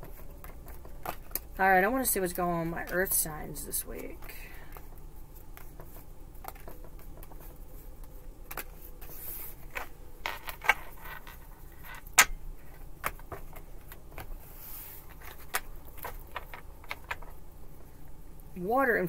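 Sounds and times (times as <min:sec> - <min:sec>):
cards shuffling rustles and clicks: 0:00.0 - 0:17.9.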